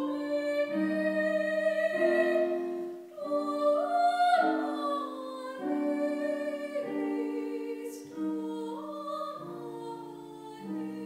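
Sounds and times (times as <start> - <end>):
woman singing classical solo: 0.0 - 11.0.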